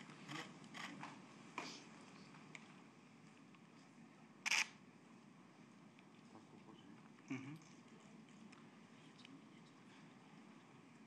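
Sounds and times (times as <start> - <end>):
camera shutter clicks: 4.5 - 4.8.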